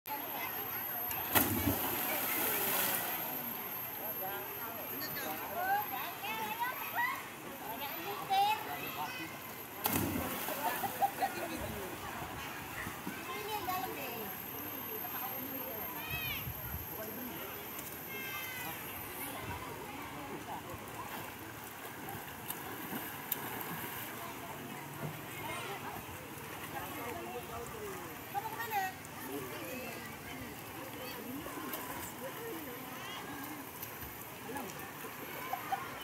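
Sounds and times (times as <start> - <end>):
murmur of distant voices: 0.1 - 36.0
body splashing into water: 1.3 - 2.9, 9.8 - 10.6.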